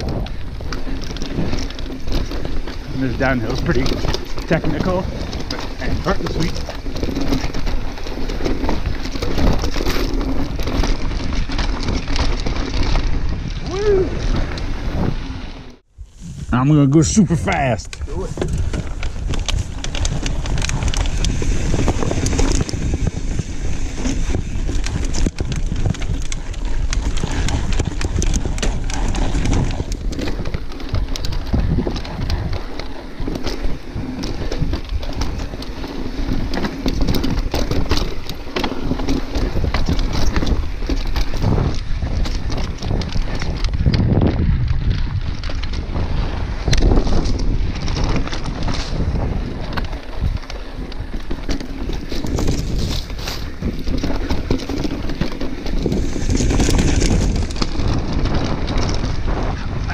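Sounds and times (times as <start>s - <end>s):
bike tyres knocking and rattling on rock: 0.0s - 15.8s, 17.5s - 59.9s
wind rushing on microphone: 0.0s - 59.9s.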